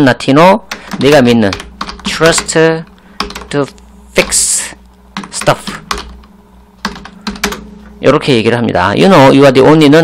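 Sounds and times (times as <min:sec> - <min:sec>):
faint steady hum: 0:00.0 - 0:10.0
computer keyboard clicking: 0:00.7 - 0:03.8, 0:05.2 - 0:07.7.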